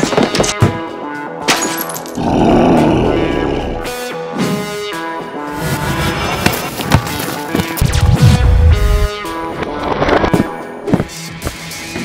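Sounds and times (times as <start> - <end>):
background music: 0.0 - 12.0
roar sound effect: 2.2 - 4.0.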